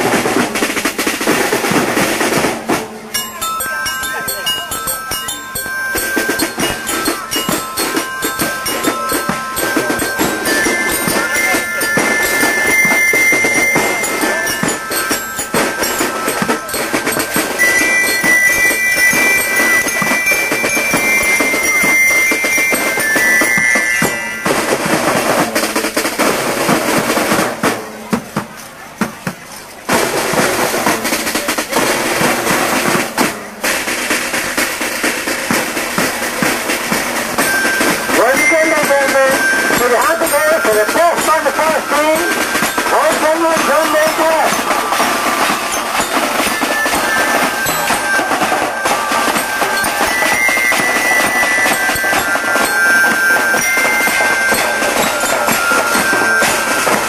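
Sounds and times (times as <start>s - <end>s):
marching band drumming: 0.0s - 57.0s
high stepping tune: 0.1s - 27.3s, 34.3s - 57.0s.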